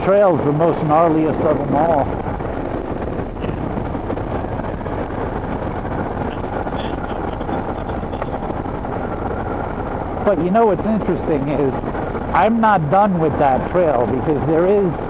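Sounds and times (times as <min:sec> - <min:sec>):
motorcycle engine running: 0:00.0 - 0:15.0
wind noise: 0:00.0 - 0:15.0.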